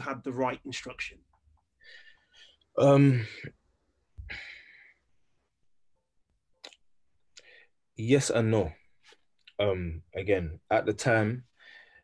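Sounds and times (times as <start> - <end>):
man's breathy sigh: 4.2 - 5.0.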